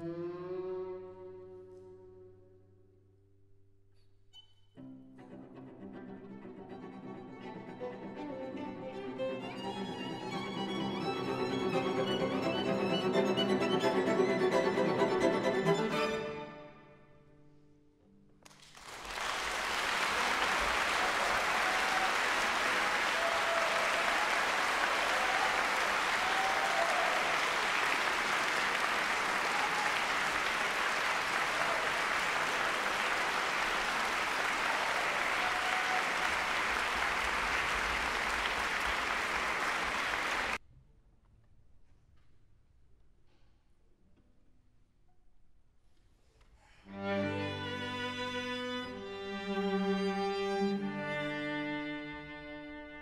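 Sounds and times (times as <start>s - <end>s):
audience applauding: 18.5s - 40.6s.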